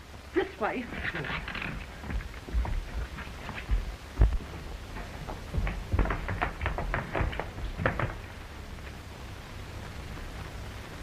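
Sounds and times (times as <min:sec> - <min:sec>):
hurried footsteps on hard floor: 0:01.5 - 0:08.3.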